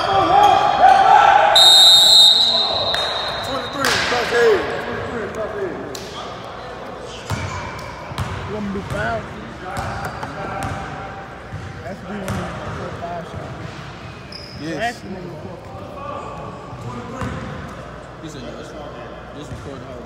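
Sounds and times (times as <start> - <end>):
basketball bouncing in echoing hall: 7.2 - 13.7, 16.7 - 17.6.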